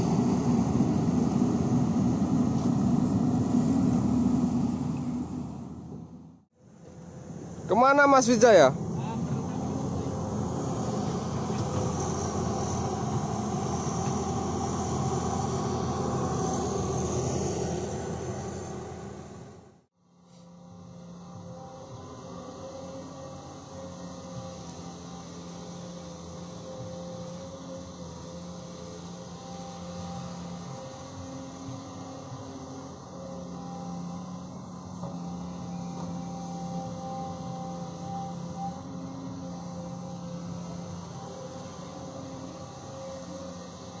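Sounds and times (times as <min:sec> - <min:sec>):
excavator diesel engine droning: 0:00.0 - 0:44.0.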